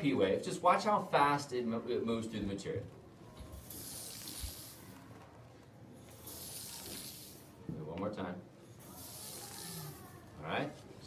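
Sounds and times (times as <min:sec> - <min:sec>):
metal slinky hissing shimmer: 0:03.5 - 0:05.0, 0:06.0 - 0:07.6, 0:08.6 - 0:10.3.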